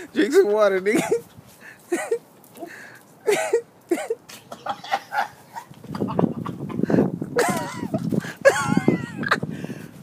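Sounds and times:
man coughing and retching: 0.9s - 1.3s, 1.9s - 2.2s, 3.2s - 5.3s, 7.4s - 9.4s.

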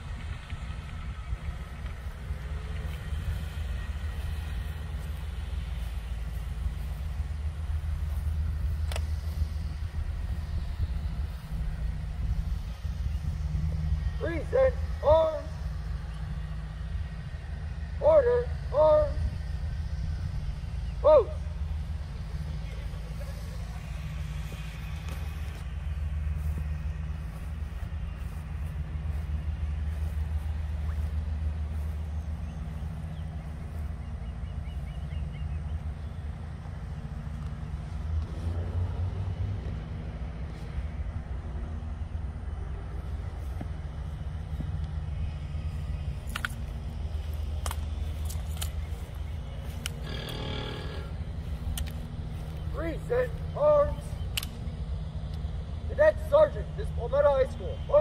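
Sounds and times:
low background rumble: 0.0s - 38.2s
faint sharp clicks: 8.8s - 9.2s, 46.2s - 46.7s, 47.6s - 48.8s, 49.8s - 50.0s, 54.2s - 54.7s.

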